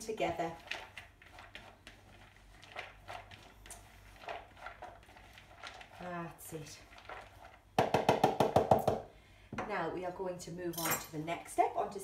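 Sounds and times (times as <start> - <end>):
food tossed in glass bowl: 0.5 - 7.7.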